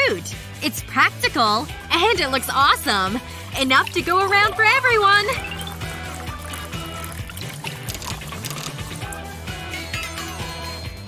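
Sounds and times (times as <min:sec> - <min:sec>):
background music: 0:00.0 - 0:11.0
drink trickling into plastic cups: 0:02.8 - 0:09.4.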